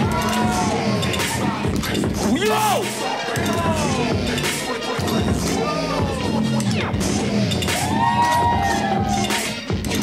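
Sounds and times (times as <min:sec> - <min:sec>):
heavy beat with low bass: 0:00.0 - 0:10.0.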